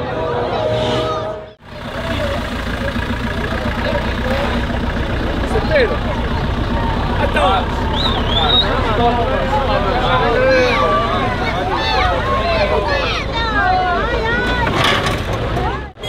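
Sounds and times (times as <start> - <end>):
crowd voices and shouts: 0.0 - 16.0
off-road vehicle engine at low revs: 0.0 - 16.0.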